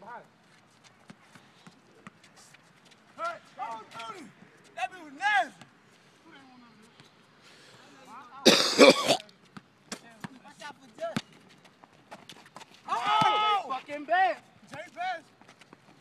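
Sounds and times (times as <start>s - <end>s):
young men calling out: 3.2s - 5.6s, 12.8s - 15.2s.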